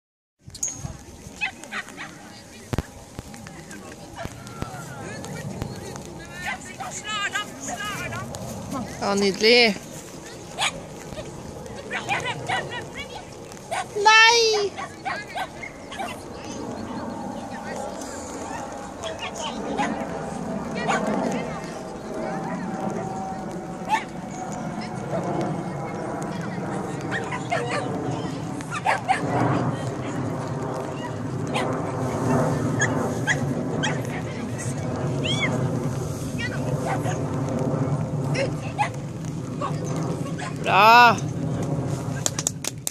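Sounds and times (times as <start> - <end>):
people talking: 0.6 - 35.6
dog barking: 28.7 - 29.2.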